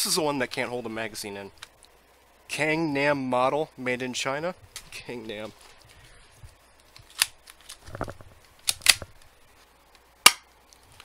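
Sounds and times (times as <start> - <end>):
plastic pistol clicks and snaps: 8.6 - 9.0, 10.2 - 10.5.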